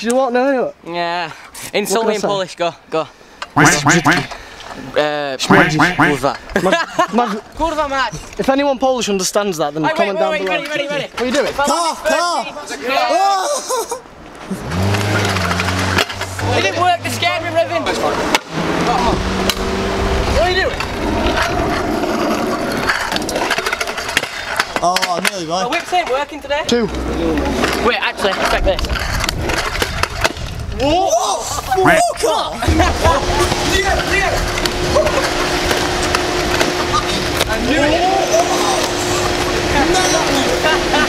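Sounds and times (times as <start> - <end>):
young man laughing: 5.6 - 7.5, 13.3 - 14.7, 36.8 - 37.4, 40.3 - 41.0
scooter wheels rolling on asphalt: 9.3 - 41.0
scooter clattering on road: 14.4 - 19.9.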